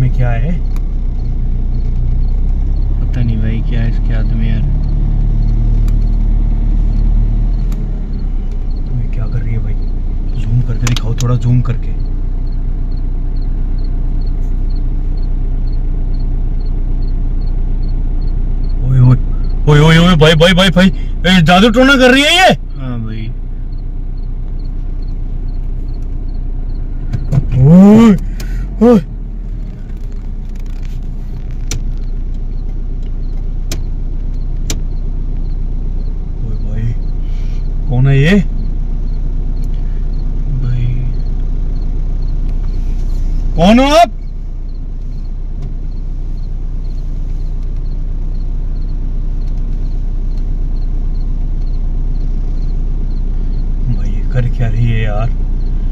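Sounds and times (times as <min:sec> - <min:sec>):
car engine idling: 0:00.0 - 0:55.9
man's voice: 0:18.8 - 0:23.4, 0:27.3 - 0:29.1, 0:43.6 - 0:44.2.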